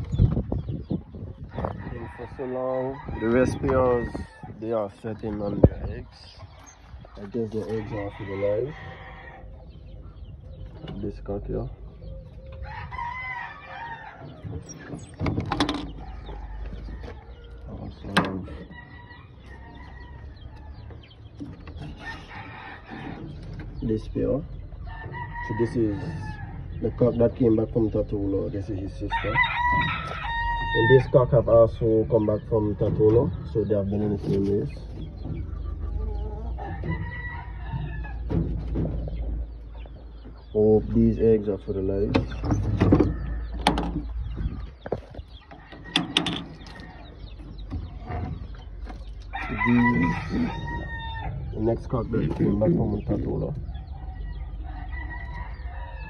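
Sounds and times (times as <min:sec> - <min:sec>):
wire mesh door clicking and rattling: 0:45.6 - 0:47.0.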